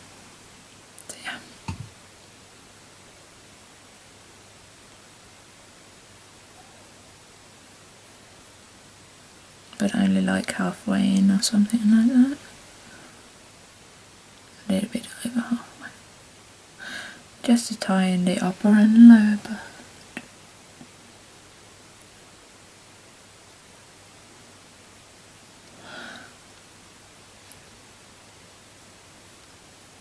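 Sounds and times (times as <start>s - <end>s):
faint steady hiss: 0.0s - 30.0s
woman speaking softly: 1.0s - 1.6s, 9.8s - 12.5s, 14.6s - 16.0s, 17.4s - 19.7s
woman whispering softly: 1.0s - 1.6s, 14.6s - 16.0s
low thump: 1.6s - 1.9s.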